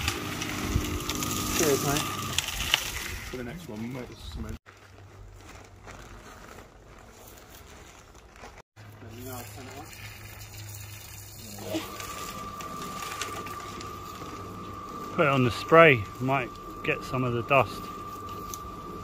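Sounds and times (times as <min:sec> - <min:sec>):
high-pitched whine: 0:00.0 - 0:03.0, 0:11.4 - 0:19.0
cement mixer motor hum: 0:00.0 - 0:04.5, 0:08.9 - 0:19.0.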